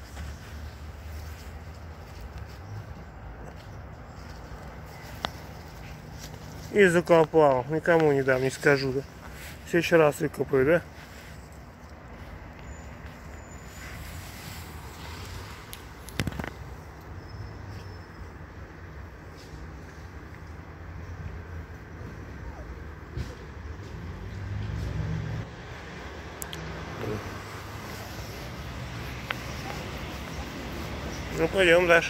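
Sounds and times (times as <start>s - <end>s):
road traffic: 0.0s - 32.0s
vehicle passing: 23.1s - 32.0s.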